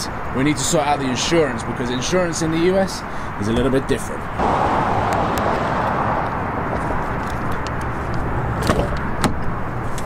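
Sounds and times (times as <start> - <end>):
car engine idling: 4.4 - 7.3
rush of noise: 4.4 - 8.3.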